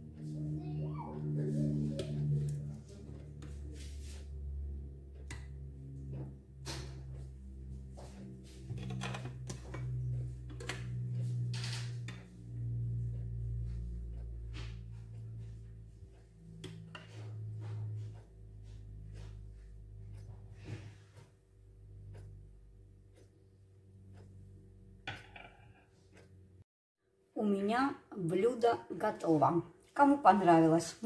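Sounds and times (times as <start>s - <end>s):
soft low tune: 0.0s - 25.0s.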